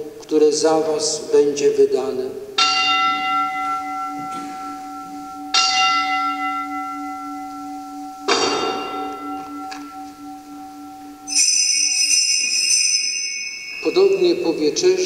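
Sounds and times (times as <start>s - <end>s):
altar bell ringing: 2.6s - 15.0s
small hand bells jingling: 2.6s - 15.0s.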